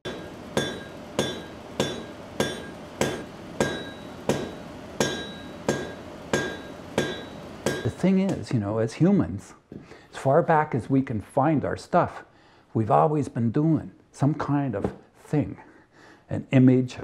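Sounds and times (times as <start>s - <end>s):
hammer ringing on anvil: 0.0s - 8.5s.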